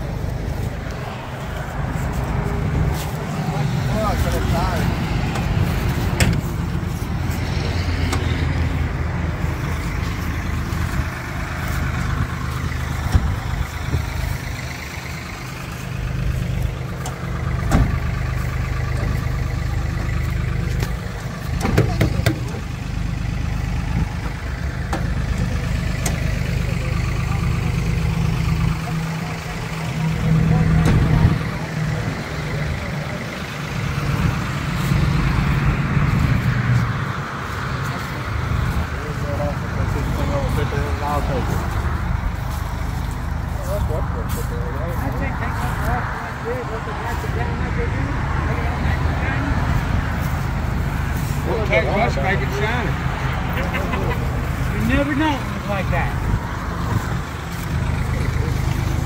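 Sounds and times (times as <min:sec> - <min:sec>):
engine idling: 0:00.0 - 0:59.0.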